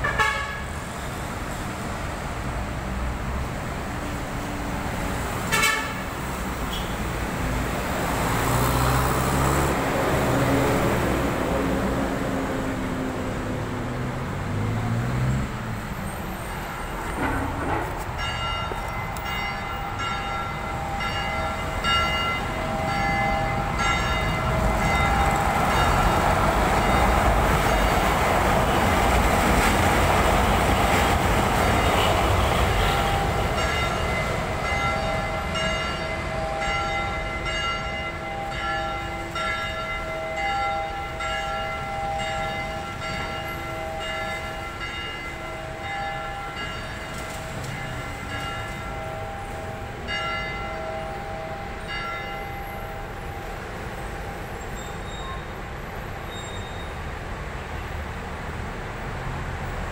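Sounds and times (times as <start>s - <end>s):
train rumbling past: 0.0s - 59.9s.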